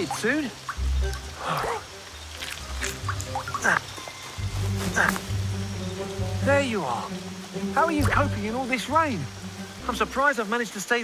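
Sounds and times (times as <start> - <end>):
background score with low notes: 0.0 - 11.0
heavy rain: 0.0 - 11.0.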